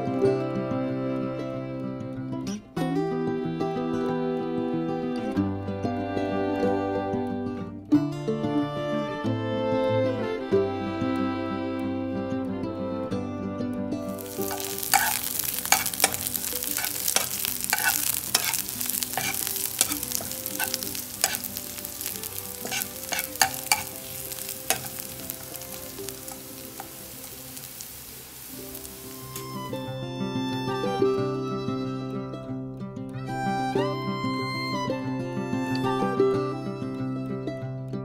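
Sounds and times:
background music: 0:00.0 - 0:38.0
spatula scraping pan: 0:14.2 - 0:29.1
onions sizzling in hot oil: 0:14.2 - 0:29.9.

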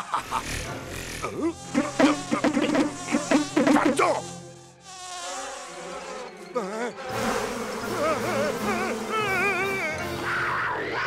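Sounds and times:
mosquito buzzing whine: 0:00.0 - 0:10.3
background music: 0:00.0 - 0:11.0.

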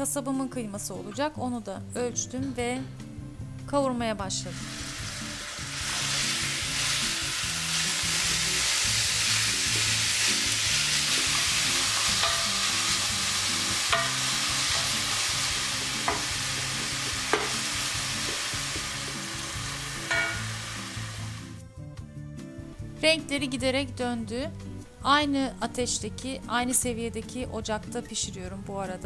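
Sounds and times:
meat sizzling in frying pans: 0:04.5 - 0:21.6
spoons knocking on pans: 0:11.3 - 0:13.0, 0:13.9 - 0:15.1, 0:16.0 - 0:16.4, 0:17.3 - 0:17.6, 0:20.1 - 0:20.5.

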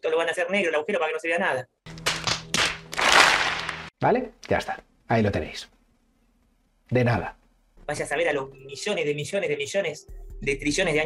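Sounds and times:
group of people applauding: 0:01.9 - 0:03.9.

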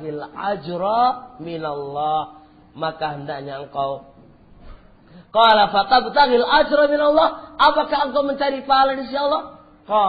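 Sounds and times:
man speaking: 0:00.0 - 0:04.1, 0:05.4 - 0:10.0.

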